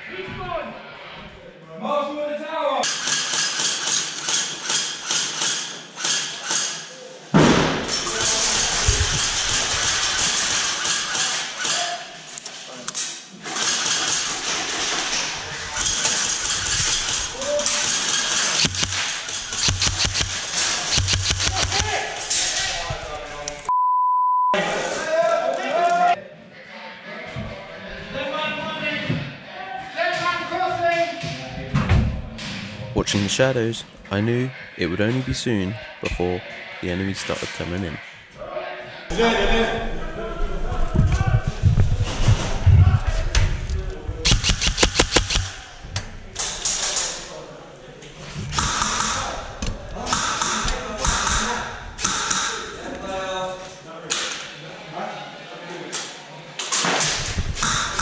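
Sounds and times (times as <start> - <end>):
airsoft guns firing: 15.8 - 22.1, 44.3 - 45.6, 48.5 - 49.4
censor bleep: 23.7 - 24.6.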